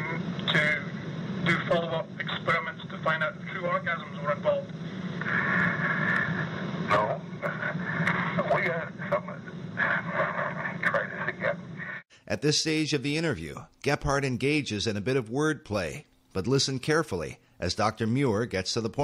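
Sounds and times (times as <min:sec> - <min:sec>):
men talking: 0:00.0 - 0:04.8, 0:06.8 - 0:19.0.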